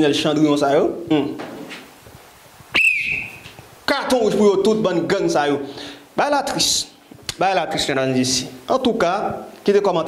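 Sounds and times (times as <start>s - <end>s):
short high whistle: 2.7s - 3.4s.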